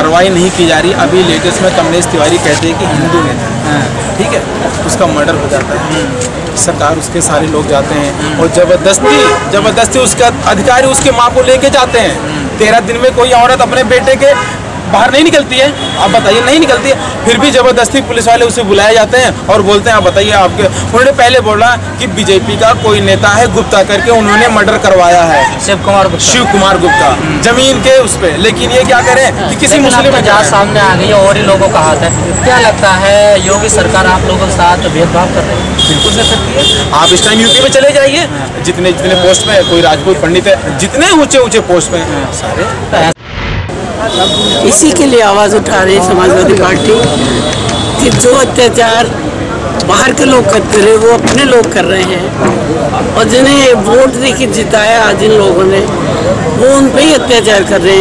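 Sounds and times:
man talking emphatically: 0:00.0 - 0:43.2, 0:44.1 - 0:49.2, 0:49.8 - 0:58.0
road traffic rumble: 0:00.0 - 0:58.0
vehicle horn: 0:09.0 - 0:09.6, 0:44.1 - 0:44.7.

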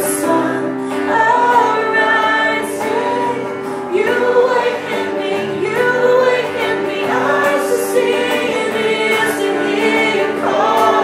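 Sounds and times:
electric guitar: 0:00.0 - 0:11.0
woman singing: 0:00.0 - 0:11.0.

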